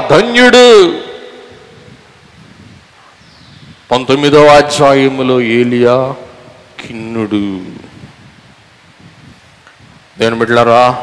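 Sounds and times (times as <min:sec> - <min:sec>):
man speaking over amplification: 0:00.0 - 0:01.8, 0:03.9 - 0:08.0, 0:10.2 - 0:11.0.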